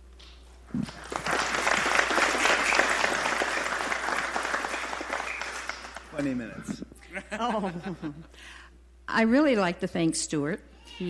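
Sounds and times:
audience applause: 0.8s - 6.5s.

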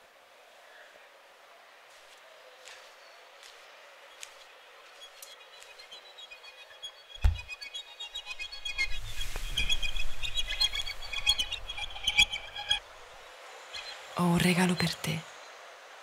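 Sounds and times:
high chirping tones: 6.8s - 12.8s
deep thump: 7.2s - 7.5s.

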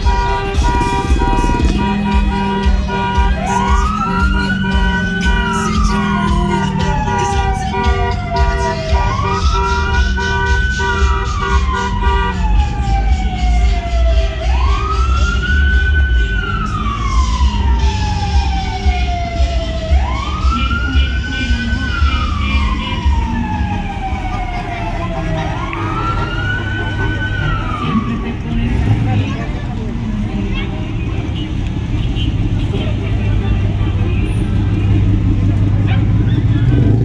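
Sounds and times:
siren wailing: 0.0s - 29.0s
low rumble of car engines: 0.0s - 37.0s.

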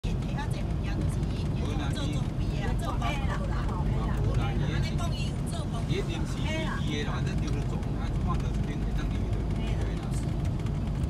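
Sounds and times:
road noise: 0.0s - 11.0s
vehicle engine rumble: 0.0s - 11.0s.

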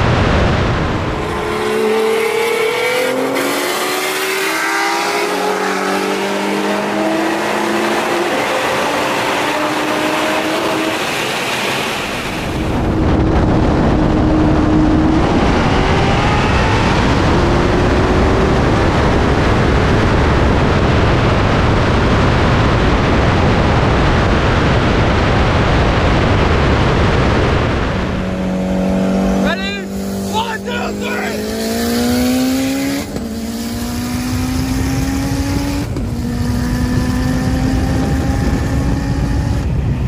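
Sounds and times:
car engines at full throttle: 0.0s - 40.0s
wind rush: 0.0s - 40.0s.

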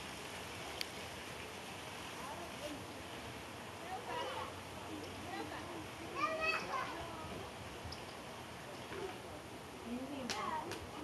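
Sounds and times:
children's voices: 5.3s - 7.6s
high-pitched child call: 6.2s - 7.0s.

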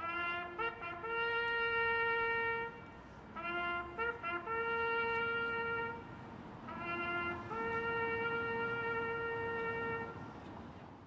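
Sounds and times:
trumpet holding long note: 0.0s - 2.8s, 3.4s - 6.1s, 6.7s - 10.2s.

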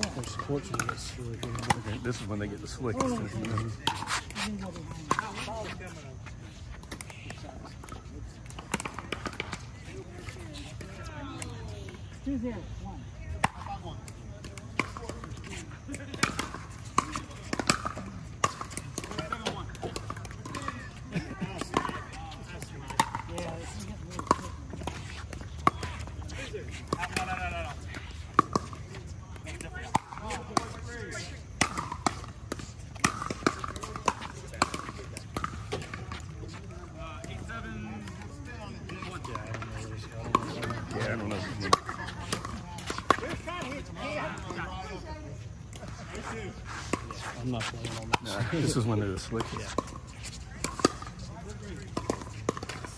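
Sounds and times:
indistinct voices of players: 32.6s - 52.9s.

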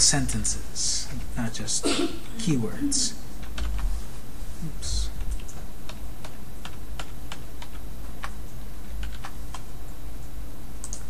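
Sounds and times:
steady low hum: 0.0s - 11.0s
keyboard typing clicks: 5.2s - 10.0s, 10.8s - 11.0s.

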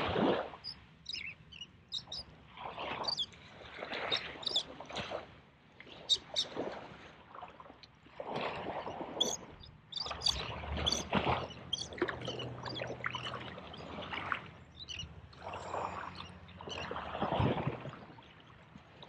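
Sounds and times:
sea water sloshing and splashing: 0.0s - 1.3s, 2.0s - 19.0s.

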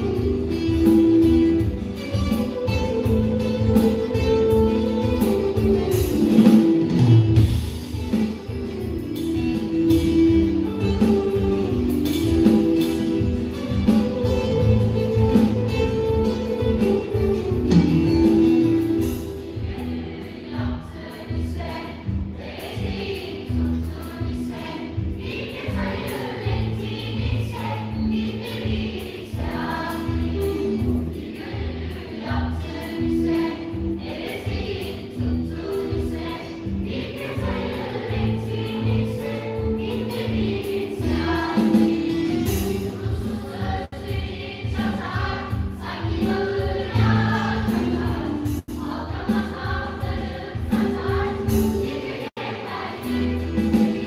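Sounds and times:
choir singing: 0.0s - 7.5s, 8.1s - 54.0s
live band playing: 0.0s - 54.0s.

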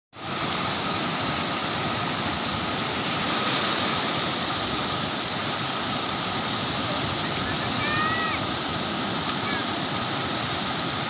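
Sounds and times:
turbulent water rushing: 0.2s - 11.0s.

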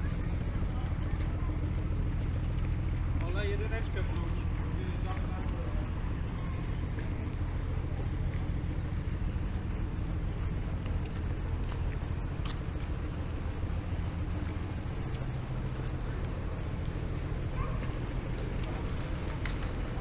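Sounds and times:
low engine rumble: 0.0s - 20.0s.

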